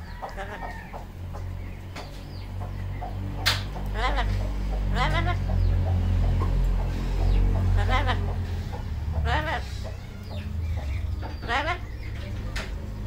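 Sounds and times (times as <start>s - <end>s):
steady low hum: 0.0s - 13.0s
parrot giving wavering calls: 0.3s - 0.9s, 3.9s - 5.5s, 7.8s - 8.5s, 9.2s - 10.6s, 11.3s - 11.9s.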